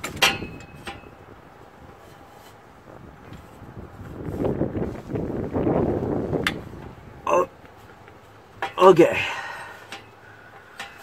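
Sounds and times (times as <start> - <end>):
shifter linkage scraping and rubbing: 0.0 - 5.2.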